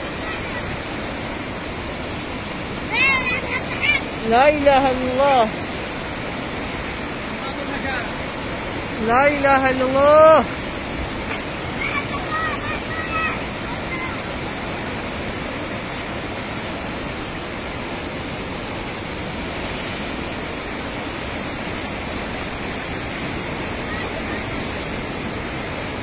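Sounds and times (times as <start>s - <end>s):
flood torrent rushing: 0.0s - 26.0s.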